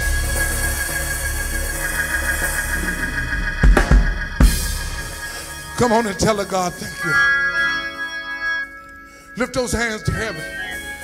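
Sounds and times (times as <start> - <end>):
steady bass line: 0.0 - 8.8
held keyboard chords: 0.0 - 11.0
sharp drum hits: 3.6 - 5.2
person preaching: 5.8 - 7.5, 9.3 - 11.0.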